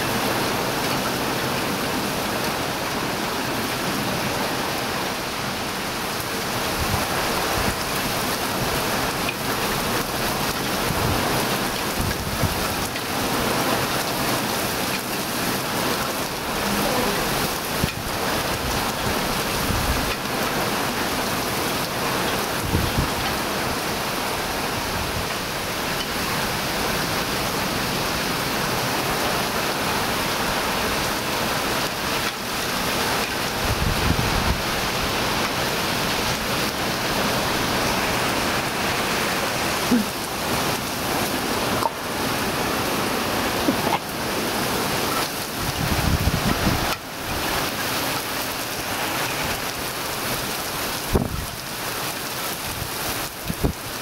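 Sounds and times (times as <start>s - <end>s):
rain on trees and plants: 0.0s - 54.0s.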